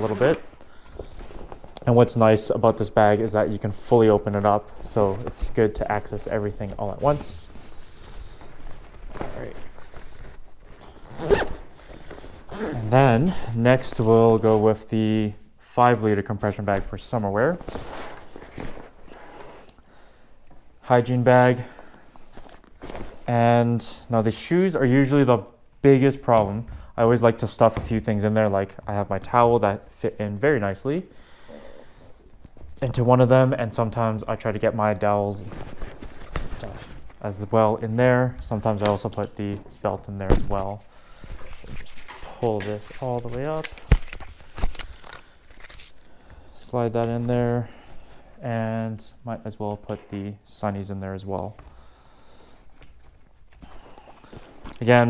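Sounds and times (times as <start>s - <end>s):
fabric rustling and scuffing: 0.0s - 12.9s.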